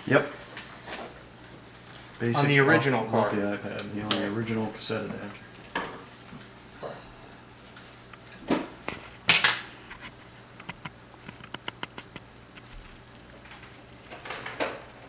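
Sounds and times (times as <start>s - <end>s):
small irregular clicks: 10.6s - 13.8s.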